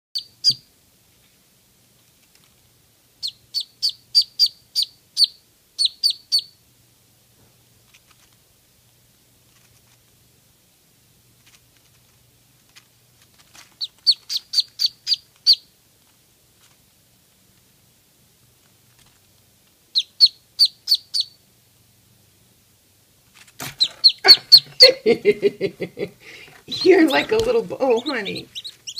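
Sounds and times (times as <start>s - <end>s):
duckling peeping loudly: 0.1s - 0.7s, 3.2s - 6.6s, 13.7s - 15.7s, 19.9s - 21.4s, 23.6s - 25.4s, 26.2s - 28.9s.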